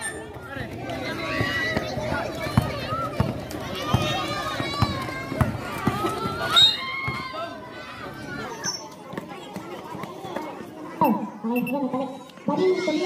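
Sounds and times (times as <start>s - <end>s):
spectators shouting and cheering: 0.0s - 13.0s
basketball dribbled on concrete: 1.2s - 7.3s
loud high shout: 6.3s - 8.1s.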